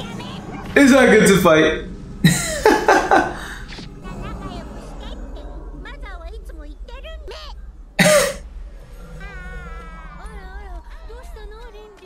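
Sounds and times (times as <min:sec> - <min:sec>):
faint cartoon dialogue: 0:03.3 - 0:08.4
loud short cough: 0:08.0 - 0:08.4.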